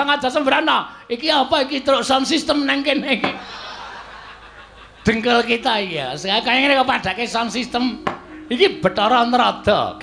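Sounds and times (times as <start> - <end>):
crowd laughing: 3.1 - 6.1
person speaking: 5.0 - 10.0.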